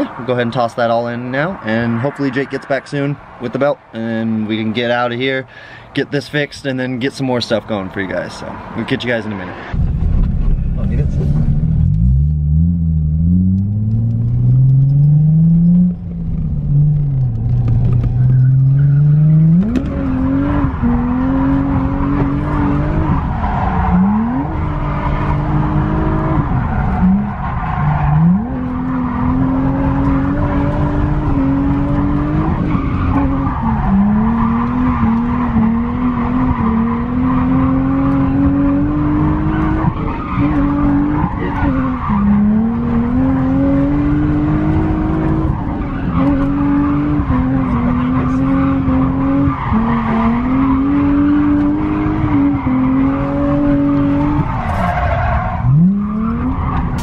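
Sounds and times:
tyres skidding and squealing: 0.0 - 57.0
car engine revving hard: 11.4 - 57.0.

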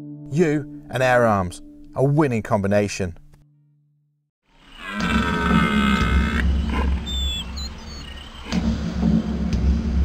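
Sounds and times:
drawn-out roar: 4.5 - 7.0.

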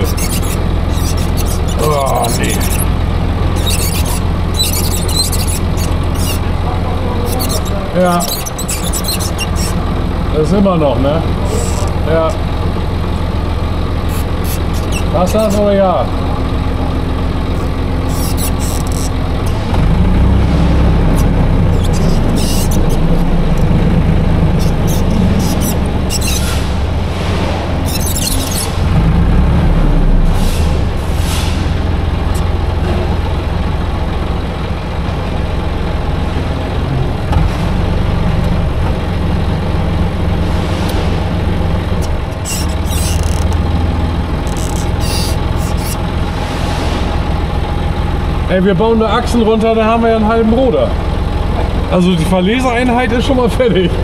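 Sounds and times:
high-pitched squeaks: 0.0 - 9.9, 11.4 - 12.5, 14.0 - 15.8, 17.5 - 29.0, 41.9 - 43.7, 44.4 - 47.3
forklift engine running: 0.0 - 54.0.

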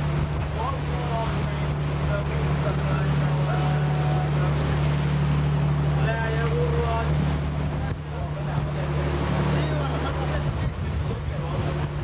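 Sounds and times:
boat engine droning: 0.0 - 12.0
water washing: 0.0 - 12.0
wind: 0.0 - 12.0.

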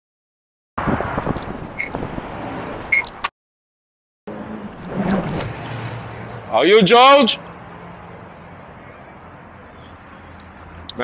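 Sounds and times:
street background noise: 0.8 - 3.3, 4.3 - 11.0.

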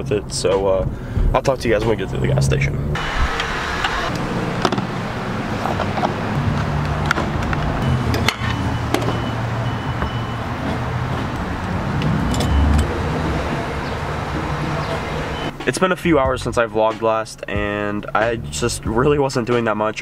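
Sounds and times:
fuel pump humming: 3.0 - 15.6
short electronic beeps: 7.8 - 10.5, 12.3 - 12.9, 15.3 - 15.6.

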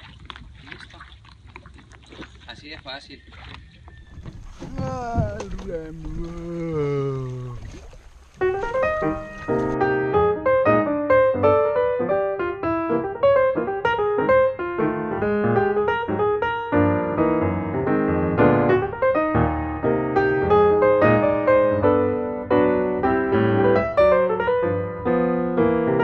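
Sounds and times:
person's voice: 4.6 - 7.6
piano music: 8.4 - 26.0.

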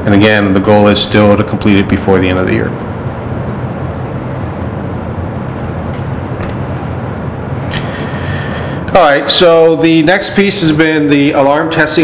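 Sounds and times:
faint hum: 0.0 - 12.0
low room rumble: 0.0 - 12.0.

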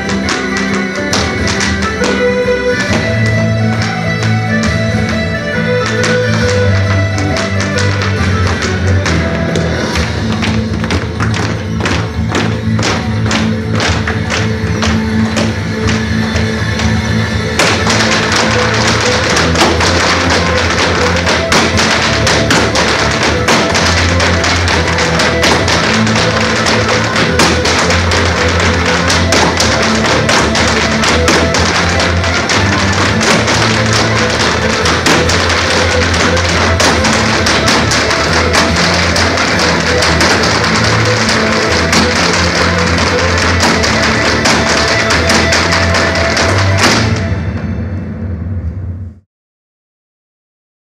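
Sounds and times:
hard shoes tapping on floor: 0.0 - 47.2
folk dance tune: 0.0 - 48.4.

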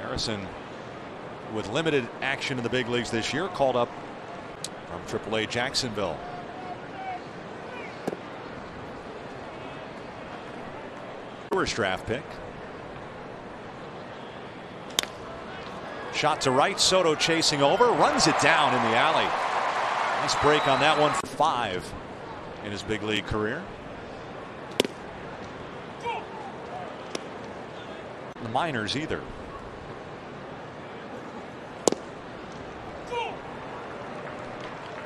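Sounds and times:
ballpark crowd hum: 0.0 - 35.0
wooden bat crack: 8.0 - 8.3, 14.9 - 15.8, 24.7 - 25.6, 26.6 - 27.6, 31.8 - 32.7
baseball smacking into mitt: 24.7 - 25.0, 31.8 - 32.1.

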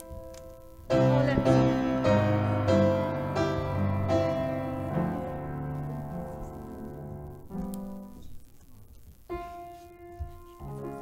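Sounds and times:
piano playing slow chords: 0.0 - 8.4, 9.3 - 11.0.

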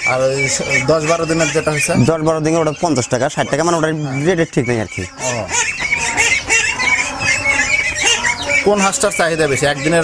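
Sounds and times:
poultry honking and squawking: 0.0 - 10.0.

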